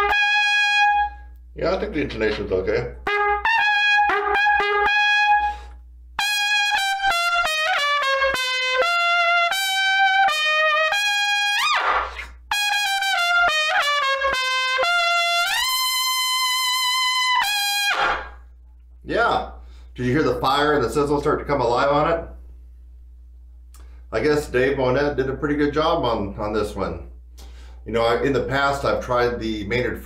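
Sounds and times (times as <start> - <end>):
loud trumpet playing: 0.0 - 1.3, 3.0 - 18.4
player breathing in: 27.4 - 27.8.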